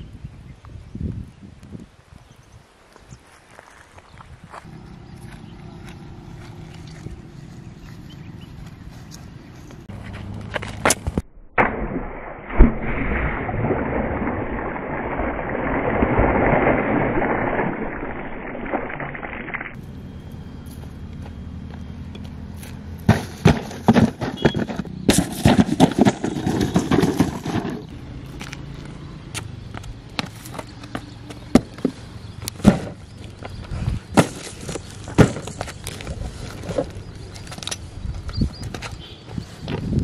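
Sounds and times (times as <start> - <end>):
wind on microphone: 0.0 - 3.2, 37.8 - 40.0
footsteps on dry dirt: 2.9 - 11.1, 20.6 - 28.8
knocks and scrapes on rocks: 23.1 - 28.6, 30.2 - 39.0.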